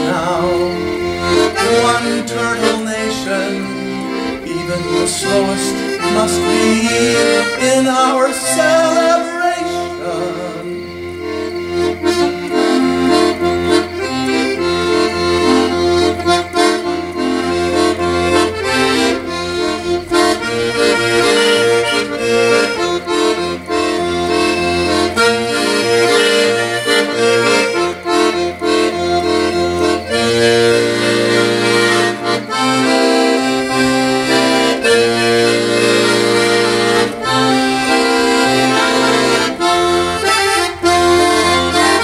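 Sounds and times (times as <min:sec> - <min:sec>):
solo accordion playing: 0:00.0 - 0:42.0.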